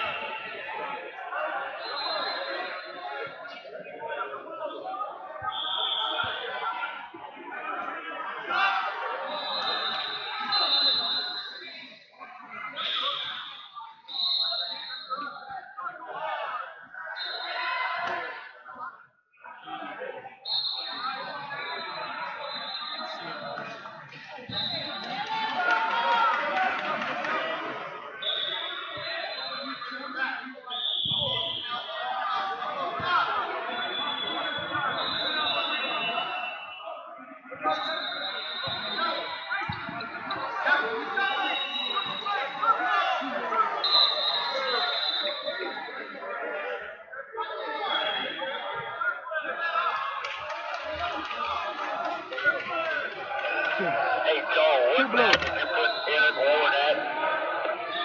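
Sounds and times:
crowd voices in a hall: 0.0 - 58.0
referee whistle blasts: 9.3 - 11.6, 28.2 - 29.9, 30.7 - 32.0, 33.7 - 36.8, 37.7 - 40.4, 41.2 - 42.6, 43.8 - 45.8, 54.3 - 57.0.

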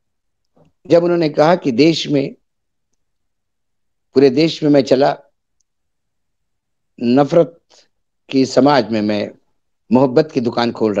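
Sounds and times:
man speaking: 0.8 - 2.4, 4.1 - 5.4, 7.0 - 11.0.

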